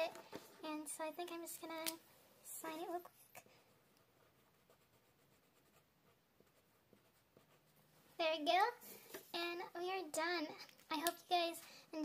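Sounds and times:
pen scratching on paper: 0:04.1 - 0:07.8.

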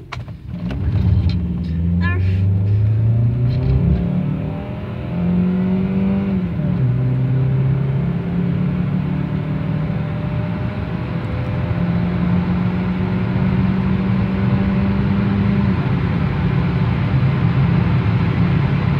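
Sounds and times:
car engine accelerating: 0:00.1 - 0:18.9.

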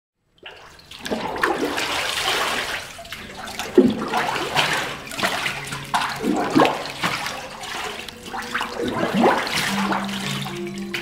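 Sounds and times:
paper pulp slurry sloshing: 0:00.5 - 0:11.0.

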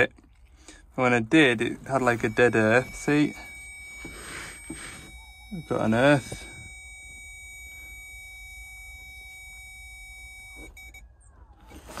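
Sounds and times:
high electronic tone: 0:01.3 - 0:12.0
low electronic tone: 0:01.4 - 0:12.0.

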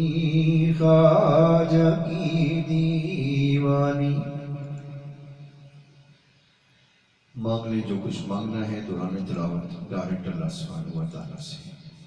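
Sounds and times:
man chanting: 0:00.0 - 0:05.2, 0:07.4 - 0:11.9.

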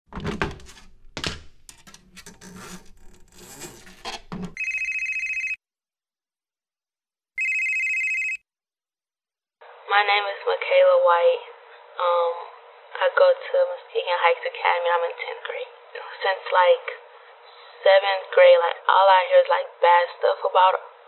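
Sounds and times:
telephone ringing: 0:04.6 - 0:05.6, 0:07.4 - 0:08.4.

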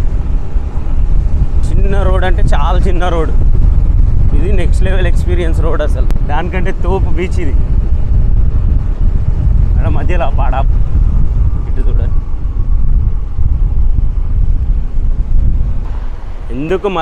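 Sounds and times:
road and engine noise: 0:00.0 - 0:17.0
wind buffeting microphone: 0:00.0 - 0:17.0.

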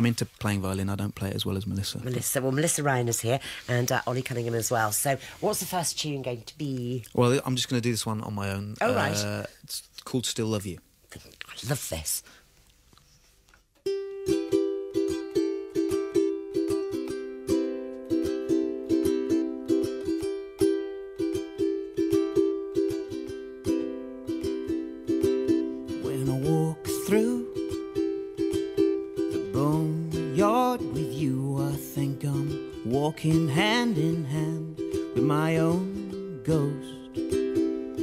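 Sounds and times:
ukulele strumming chords: 0:08.8 - 0:09.3, 0:13.8 - 0:38.0
man singing: 0:26.0 - 0:27.6, 0:29.4 - 0:37.1.

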